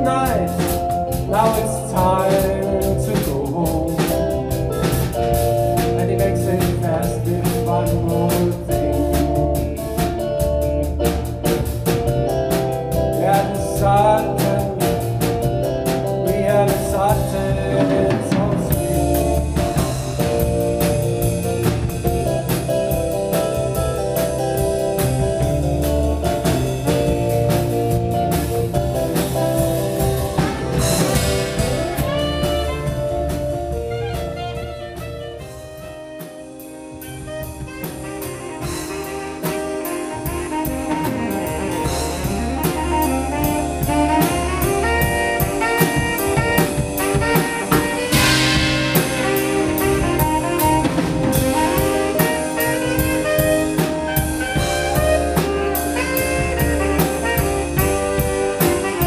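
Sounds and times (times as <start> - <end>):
drum kit beat: 0.0 - 59.0
keyboard chords: 0.0 - 59.0.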